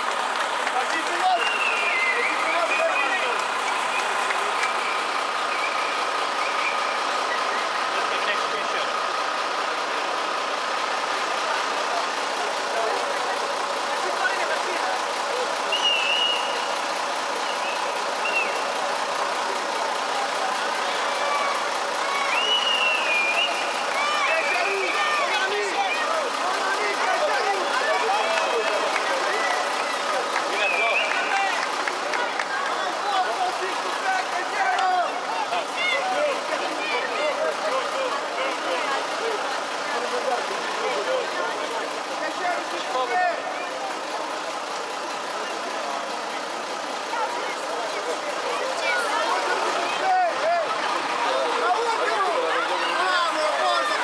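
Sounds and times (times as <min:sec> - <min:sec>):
crowd of fans talking and calling: 0:00.0 - 0:54.0.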